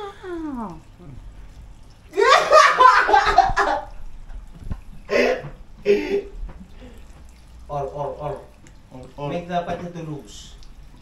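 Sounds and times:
laughter: 2.2s - 3.9s.

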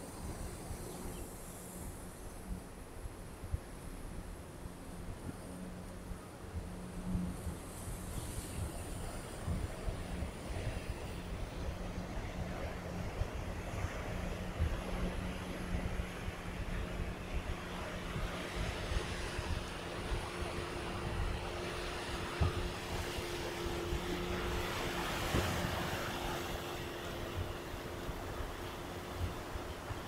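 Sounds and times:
engine drone: 0.0s - 30.0s
wind on microphone: 0.0s - 30.0s
surf washing over rocks: 7.6s - 30.0s.

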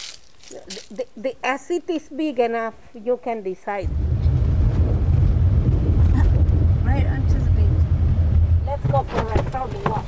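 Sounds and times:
car driving on dirt track: 3.9s - 10.0s.

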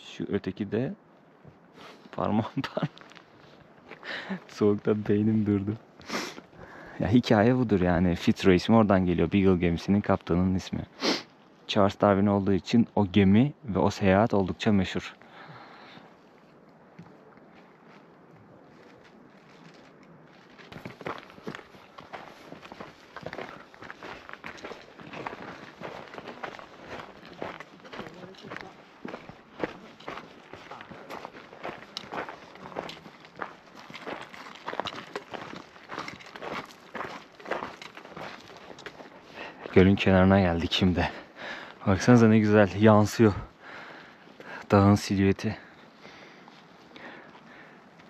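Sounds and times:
faint hiss: 6.0s - 7.2s, 10.7s - 11.8s
footsteps on gravel: 17.1s - 42.2s.

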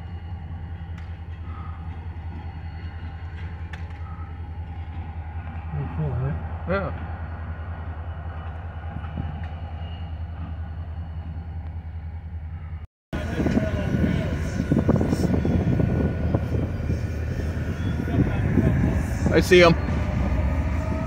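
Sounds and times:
diesel locomotives idling: 0.0s - 21.0s.

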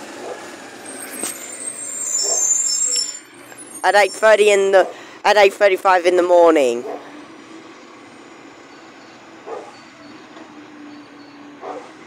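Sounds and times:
garbage truck running: 0.0s - 12.0s
high-pitched brake squeal: 0.6s - 4.4s, 8.1s - 12.0s.

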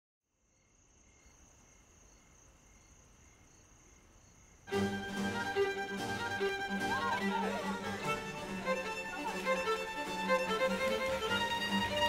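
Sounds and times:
crickets chirring: 0.3s - 4.8s.

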